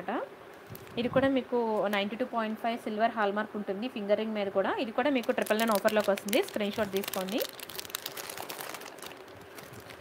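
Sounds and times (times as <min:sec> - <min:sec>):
thin plastic crinkling: 0:00.5 - 0:01.1, 0:05.0 - 0:10.0.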